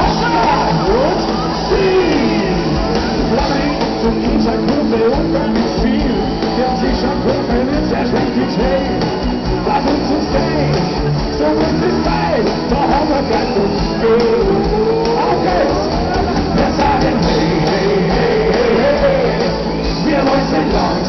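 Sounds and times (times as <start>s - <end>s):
drums: 0.0s - 21.0s
live rock band playing: 0.0s - 21.0s
singer singing: 0.0s - 21.0s.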